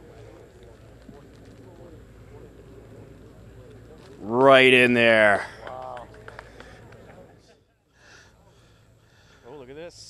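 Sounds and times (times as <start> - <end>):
distant chatter of onlookers: 0.0 - 10.0
low steady hum: 0.0 - 10.0.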